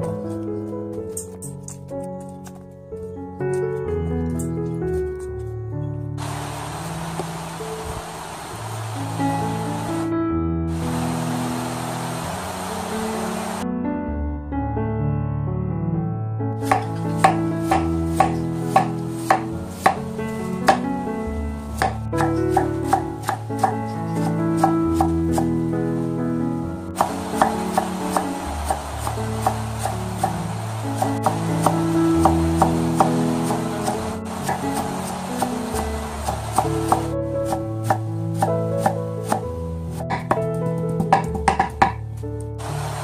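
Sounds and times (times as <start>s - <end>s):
background music: 0.0s - 43.0s
knife chopping on wooden board: 16.7s - 20.0s, 21.8s - 23.8s, 24.6s - 25.5s, 27.0s - 30.4s, 31.0s - 35.5s, 36.2s - 39.4s, 40.1s - 40.4s, 41.0s - 42.0s.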